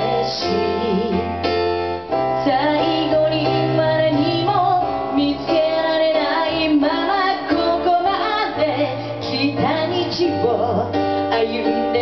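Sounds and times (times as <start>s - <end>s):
woman singing pop ballad: 0.0s - 1.5s, 2.4s - 12.0s
electric keyboard chords and bass: 0.0s - 12.0s.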